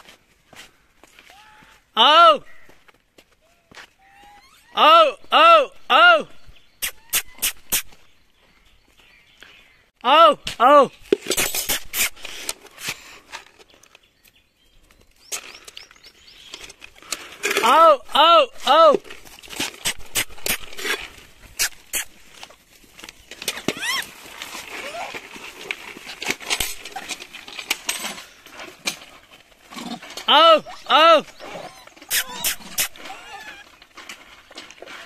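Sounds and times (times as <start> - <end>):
monkeys squealing: 4.0 - 4.8, 6.8 - 7.9, 21.6 - 22.2, 23.5 - 24.2, 24.8 - 25.2, 30.6 - 33.8.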